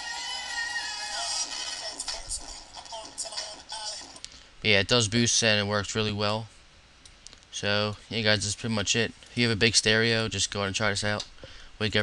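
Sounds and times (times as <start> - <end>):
song through laptop speakers: 0.0 - 4.4.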